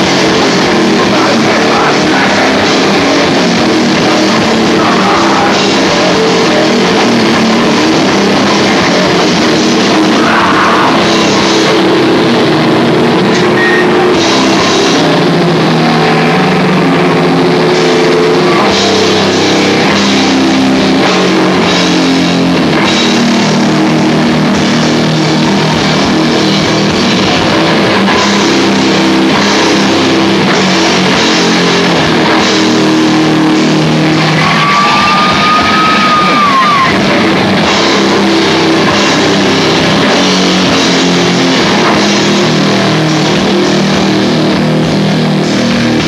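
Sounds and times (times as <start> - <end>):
distorted guitars sustained chord: 0.0 - 46.0.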